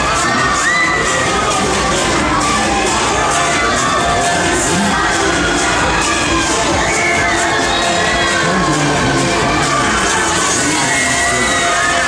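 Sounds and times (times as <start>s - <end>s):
riders screaming and shouting: 0.0s - 12.0s.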